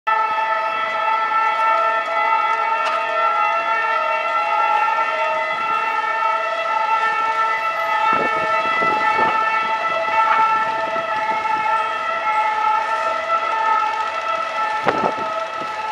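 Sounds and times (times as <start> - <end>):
excavator whine: 0.2 - 15.9.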